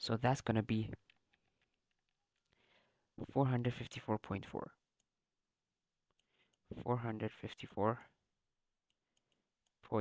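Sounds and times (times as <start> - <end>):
person speaking: 0.0 - 1.5, 3.2 - 5.2, 6.6 - 10.0.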